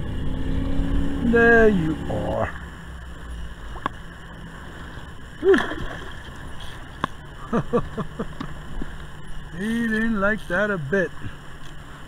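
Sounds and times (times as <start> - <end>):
water lapping against kayak hull: 3.6 - 9.2
man laughing: 5.4 - 5.8, 7.4 - 8.5.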